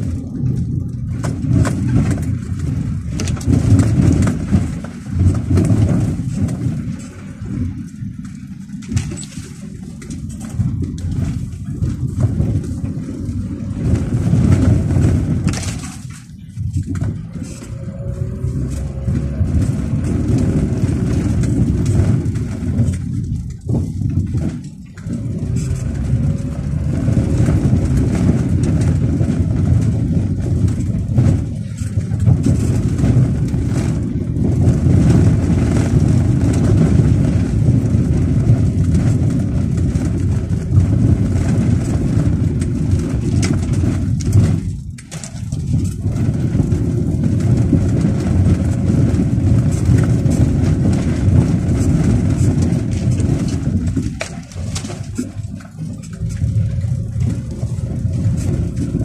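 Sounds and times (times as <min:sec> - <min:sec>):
car engine and tyres rumbling: 0:00.0 - 0:59.0.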